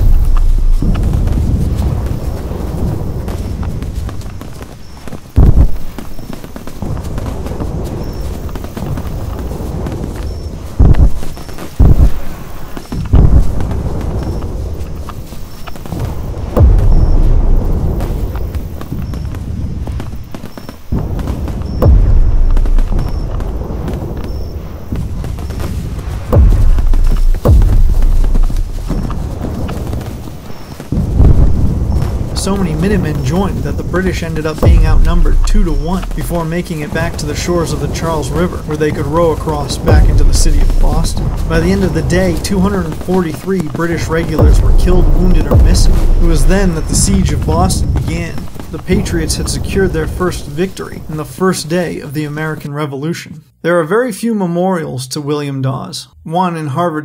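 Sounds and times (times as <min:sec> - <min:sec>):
loud gunfire boom: 0:00.0 - 0:04.3, 0:05.4 - 0:06.1, 0:06.8 - 0:20.0, 0:20.9 - 0:51.3
horse hooves: 0:00.0 - 0:52.6
rumbling background: 0:00.0 - 0:53.6.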